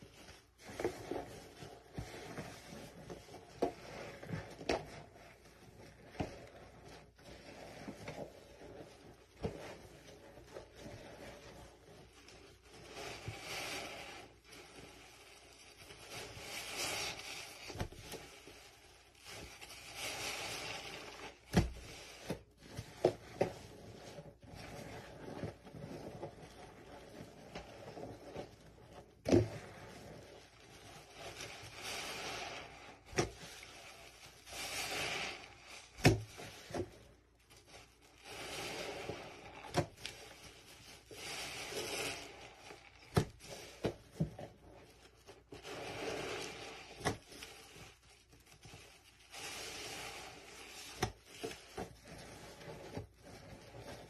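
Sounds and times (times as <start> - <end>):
paste scraped by hand: 0.0 - 54.0.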